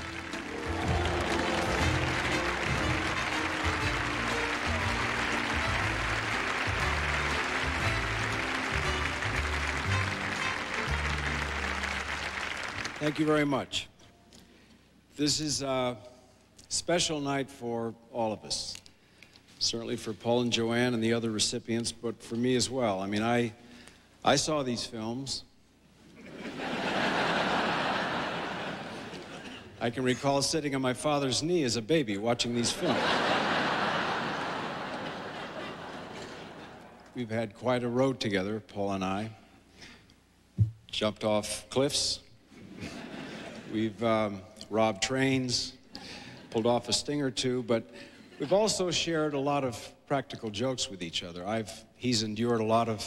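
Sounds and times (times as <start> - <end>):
walk-on music: 0.0 - 13.2
audience applauding: 0.0 - 13.3, 33.2 - 37.1
audience laughing: 26.2 - 29.8, 32.7 - 37.1, 42.6 - 43.8.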